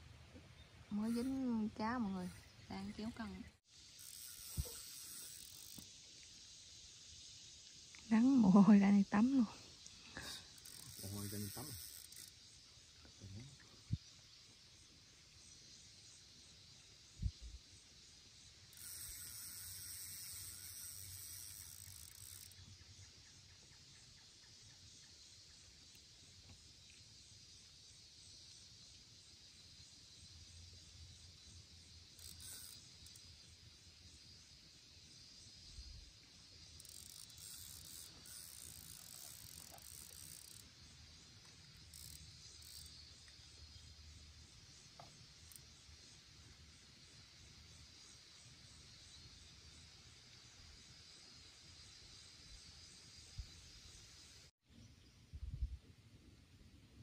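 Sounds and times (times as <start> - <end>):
faint high hissing buzz: 0.0 - 57.0.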